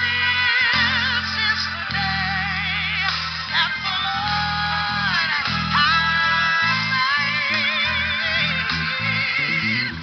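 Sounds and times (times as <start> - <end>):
electric bass guitar: 0.0 - 10.0
worship song backing track: 0.0 - 10.0.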